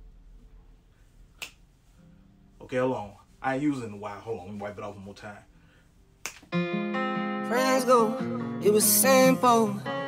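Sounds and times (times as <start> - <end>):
finger snap: 1.3 - 1.7, 6.2 - 6.5.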